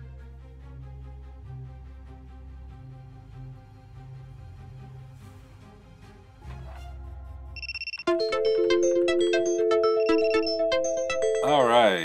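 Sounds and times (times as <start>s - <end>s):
short beep: 7.6s - 8.1s
ringtone chime melody: 7.6s - 12.0s.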